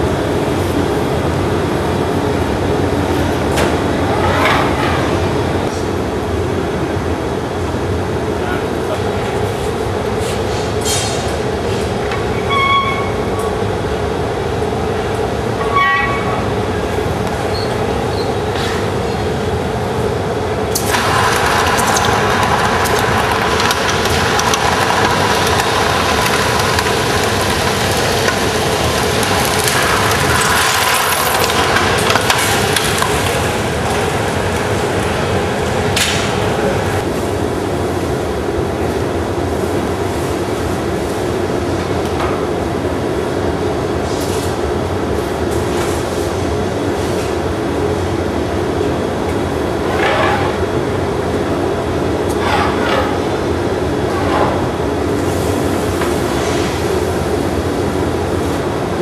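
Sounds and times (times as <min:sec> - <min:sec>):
furnace and burner roar: 0:00.0 - 0:59.0.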